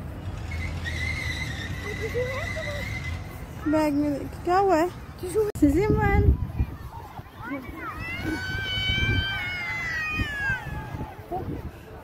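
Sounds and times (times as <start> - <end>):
faint voices: 1.5 - 12.0
child squealing: 8.0 - 10.8.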